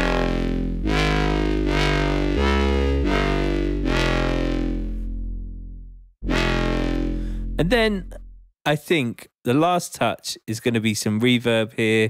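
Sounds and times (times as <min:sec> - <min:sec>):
distorted synth bass notes: 0:00.0 - 0:08.5.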